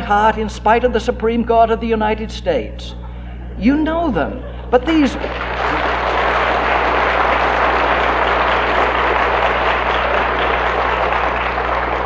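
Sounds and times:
audience applauding: 5.1s - 12.0s.

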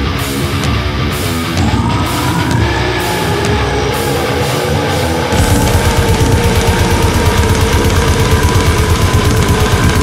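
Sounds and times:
instrumental heavy metal: 0.0s - 10.0s.

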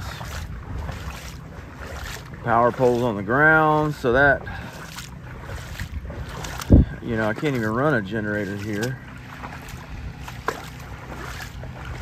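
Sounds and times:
wind on microphone: 0.0s - 2.4s, 3.9s - 7.4s, 9.5s - 12.0s.

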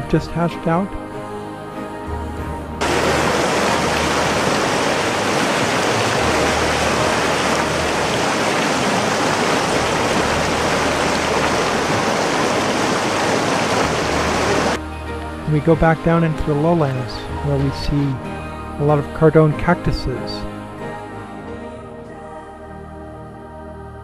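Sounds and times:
river rushing over rocks: 2.8s - 14.8s.

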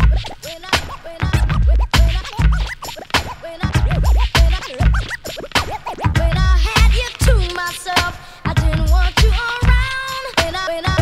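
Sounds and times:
hip-hop beat: 0.0s - 11.0s
turntable scratching: 0.0s - 11.0s
heavy kick-drum hits: 1.2s - 2.7s, 3.7s - 5.1s, 6.1s - 7.4s.

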